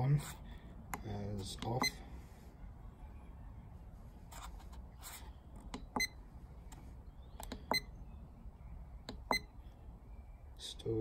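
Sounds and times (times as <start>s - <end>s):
keypad button clicks: 5.7s - 6.2s.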